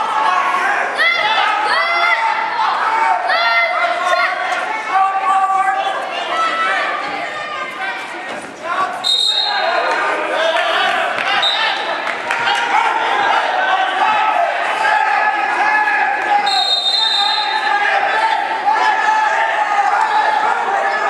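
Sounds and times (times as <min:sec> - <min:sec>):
people calling out: 0:00.0 - 0:21.0
referee's whistle blasts: 0:09.0 - 0:09.7, 0:11.4 - 0:11.8, 0:16.4 - 0:17.8.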